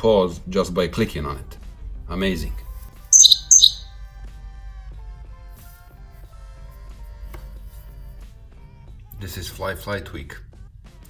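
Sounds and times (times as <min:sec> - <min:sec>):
faint background music: 0:00.0 - 0:11.0
bird-like notification chirps: 0:03.2 - 0:03.9.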